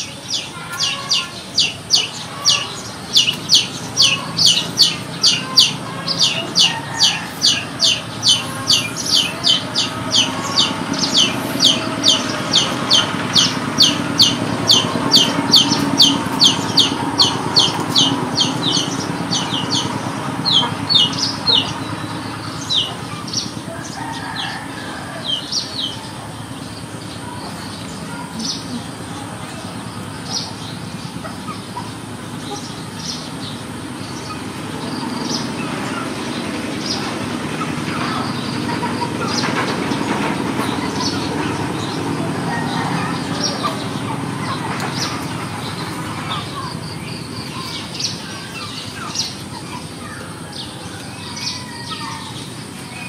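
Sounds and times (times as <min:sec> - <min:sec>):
chick peeping: 0:00.0 - 0:53.0.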